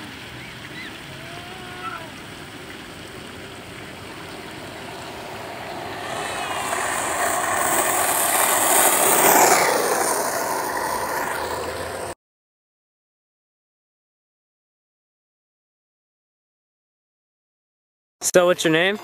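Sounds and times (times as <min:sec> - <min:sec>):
skateboard wheels rolling on asphalt: 0:00.0 - 0:12.2.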